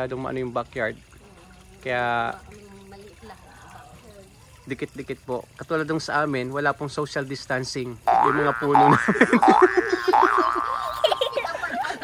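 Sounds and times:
cartoon boing: 8.1s - 11.2s.

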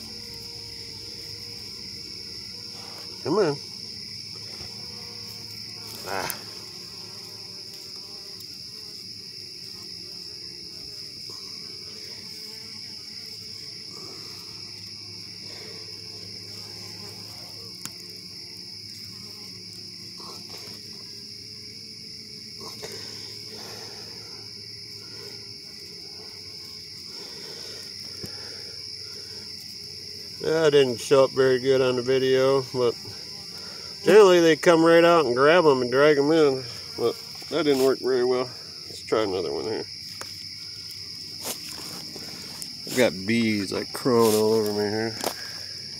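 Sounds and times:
crickets chirring: 0.0s - 45.9s.

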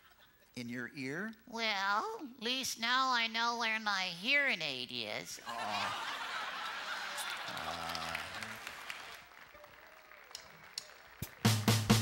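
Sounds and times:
audience applauding: 5.5s - 12.0s.

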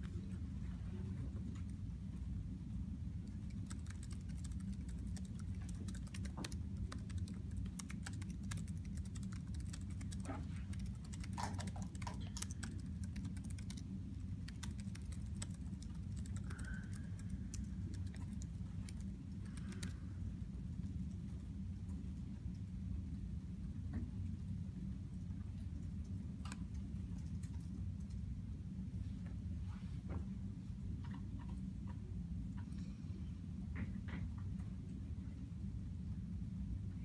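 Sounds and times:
low room hum: 0.0s - 37.0s
laptop keyboard typing: 3.1s - 20.1s.

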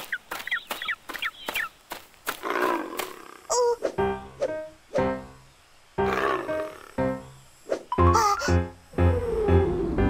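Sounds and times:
bird clucking calls: 0.0s - 1.8s.

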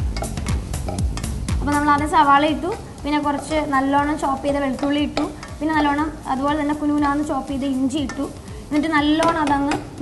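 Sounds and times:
spoon stirring in metal pot: 0.0s - 1.5s, 2.7s - 6.0s
background music melody: 0.0s - 10.0s.

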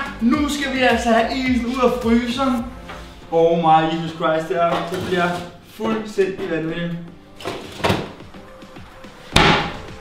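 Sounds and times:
quiet background music: 0.0s - 10.0s
freezer drawer slamming shut: 9.4s - 9.9s.

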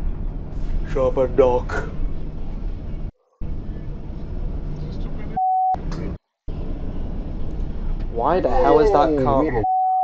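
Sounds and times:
car road and engine noise: 0.0s - 10.0s
driver talking: 0.8s - 2.0s, 8.0s - 10.0s
censor bleep: 5.4s - 5.8s, 9.6s - 10.0s.

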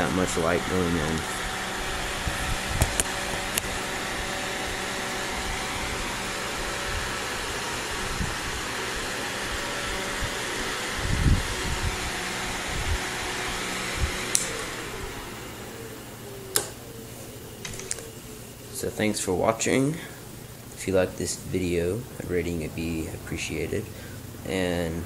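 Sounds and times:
computer fan running: 0.0s - 25.0s.

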